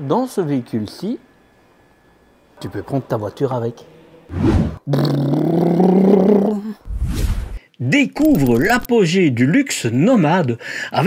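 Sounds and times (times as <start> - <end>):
short rush of noise: 4.3 - 4.8, 6.9 - 7.6
man imitating car engine: 4.8 - 6.8.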